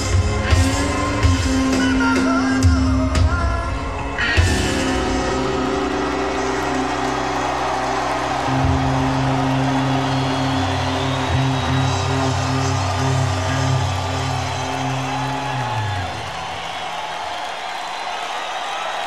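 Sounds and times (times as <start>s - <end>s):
live rock band playing blues: 0.0s - 9.3s
crowd noise: 0.0s - 19.0s.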